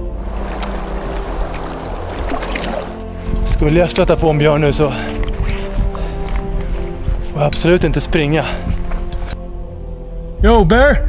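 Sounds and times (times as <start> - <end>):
water rushing and splashing: 0.0 - 9.5
background music steady tones: 0.0 - 11.0.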